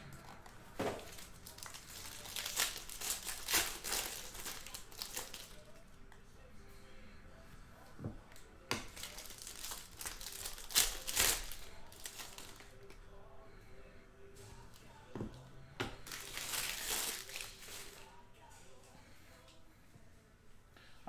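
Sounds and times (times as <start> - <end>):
cards rustling in hand: 0.2 - 5.8, 8.8 - 13.0, 16.0 - 18.1.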